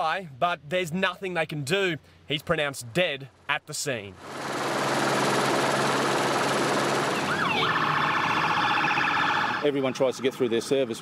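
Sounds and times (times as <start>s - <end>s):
loud steady rushing noise: 4.2s - 8.6s
police car siren warbling: 5.8s - 10.3s.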